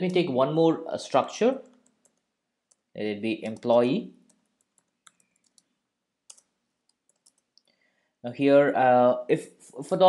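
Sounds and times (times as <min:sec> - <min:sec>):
computer keyboard keystrokes: 0:04.3 - 0:05.7, 0:06.3 - 0:07.6.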